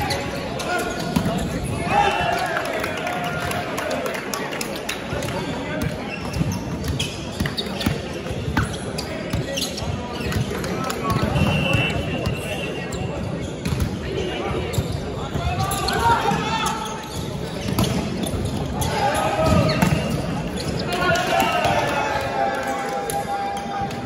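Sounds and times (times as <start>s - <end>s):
players' voices and calls: 0.0s - 24.0s.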